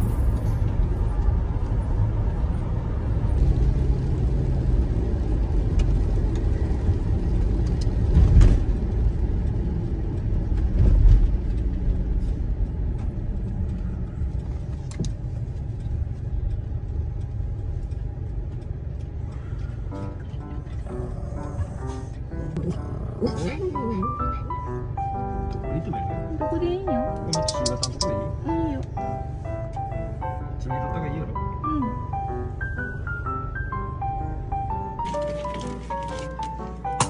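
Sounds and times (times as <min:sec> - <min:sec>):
engine and road rumble: 0:00.0 - 0:37.0.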